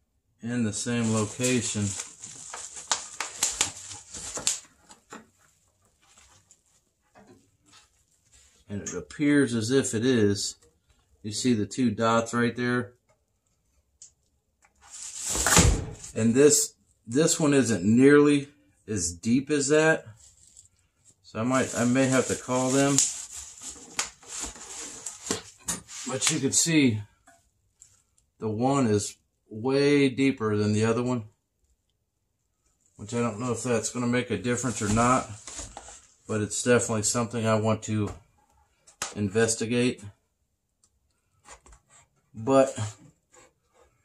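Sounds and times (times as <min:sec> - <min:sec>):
plastic packaging crinkling: 0:01.0 - 0:05.0, 0:21.5 - 0:26.4.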